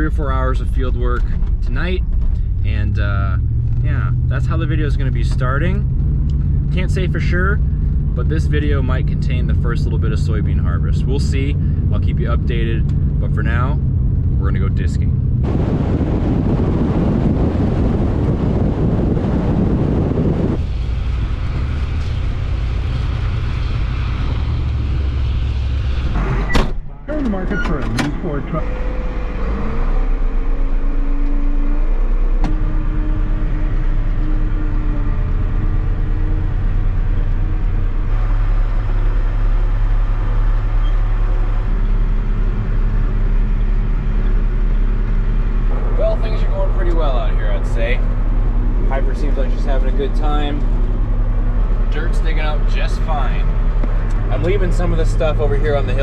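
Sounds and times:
diesel tractor engine droning: 0.0 - 56.0
pickup truck driving: 0.0 - 56.0.

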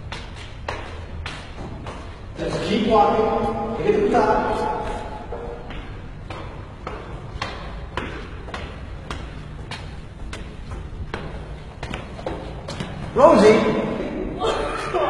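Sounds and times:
footsteps climbing stairs: 0.0 - 14.0.

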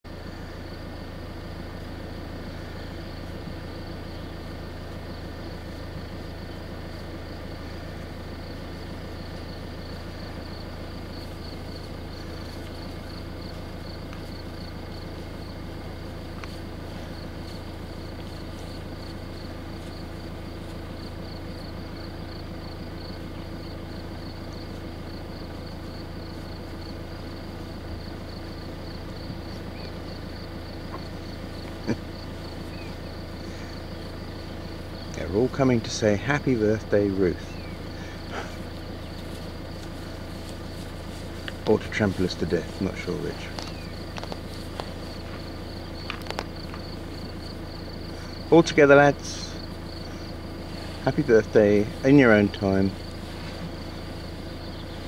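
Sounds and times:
insect chirping: 0.0 - 55.0
low rumble: 0.0 - 55.0.

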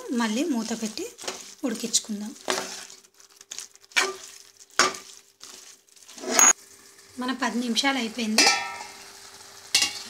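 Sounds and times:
spatula scraping cooking pot: 0.8 - 6.6.

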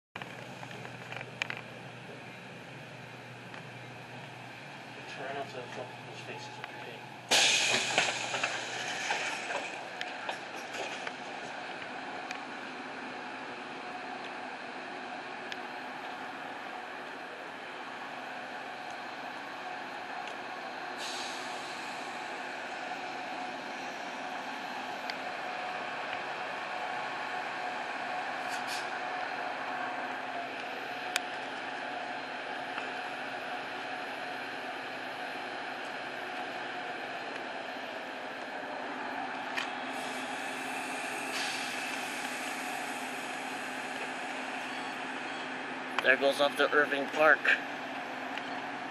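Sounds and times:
train engine drone: 0.2 - 48.9
air hissing: 7.3 - 9.7, 21.0 - 22.2, 28.4 - 28.9, 39.9 - 44.6.

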